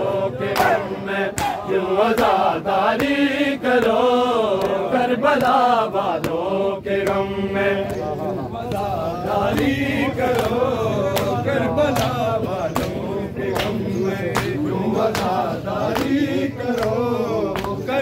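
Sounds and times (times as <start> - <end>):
men chanting a lament: 0.0 - 18.0
hands slapping chests: 0.5 - 8.1, 9.5 - 18.0.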